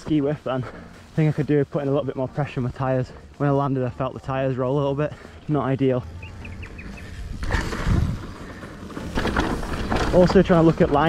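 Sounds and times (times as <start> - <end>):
bike tyres on dirt trail: 0.0 - 11.0
bike rattling over bumps: 3.9 - 11.0
bird chirping: 5.6 - 7.4
wind buffeting on microphone: 6.2 - 8.6.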